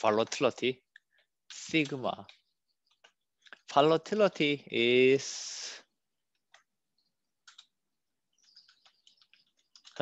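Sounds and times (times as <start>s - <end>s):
computer keyboard keystrokes: 7.4s - 7.8s, 8.4s - 10.0s.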